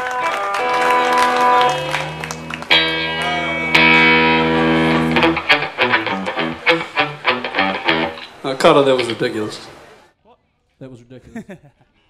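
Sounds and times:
ringing electric guitar chord: 0.0s - 9.3s
short picked guitar notes: 0.0s - 9.8s.

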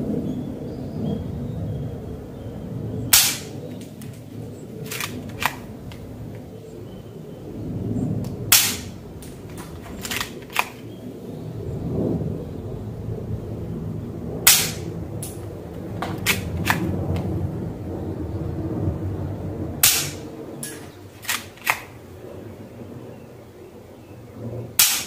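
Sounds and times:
low background rumble: 0.0s - 24.8s
toy pistol firing pops: 3.2s - 4.2s, 4.9s - 6.0s, 8.5s - 10.9s, 14.5s - 15.4s, 16.0s - 17.2s, 19.8s - 21.9s, 24.8s - 25.0s.

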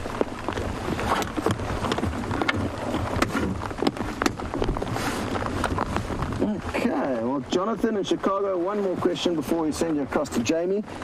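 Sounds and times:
rain drops ticking on vehicle: 0.0s - 11.0s.

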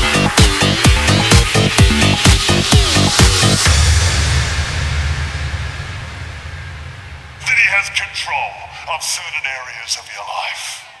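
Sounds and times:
low bass tone: 0.9s - 9.1s.

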